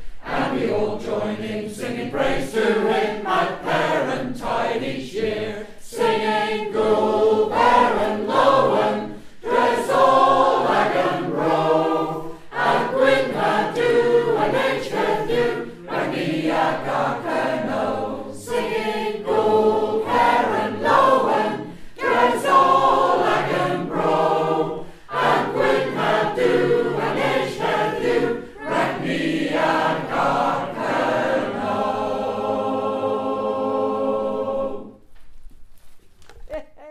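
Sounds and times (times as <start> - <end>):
choir singing in harmony: 0.0 - 35.0.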